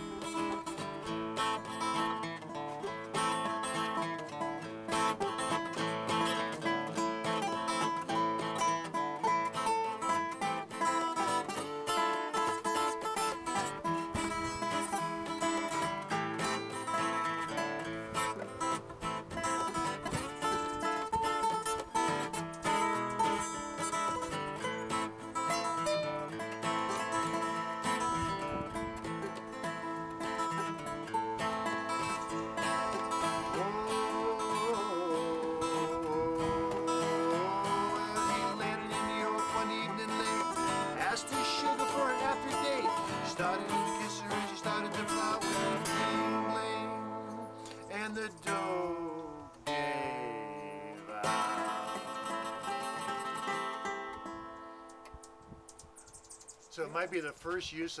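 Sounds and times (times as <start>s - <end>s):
acoustic guitar blues: 0.0s - 58.0s.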